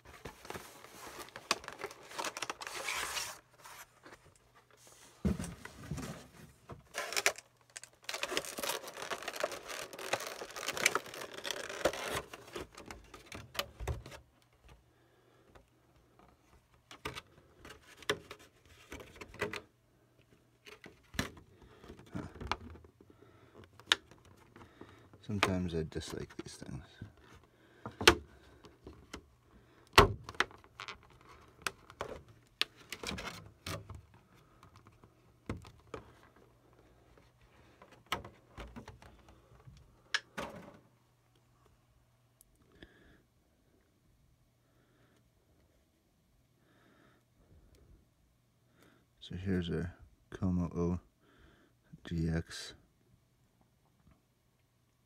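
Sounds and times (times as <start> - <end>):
plastic packaging crinkling: 0.2 - 3.8, 6.8 - 14.2.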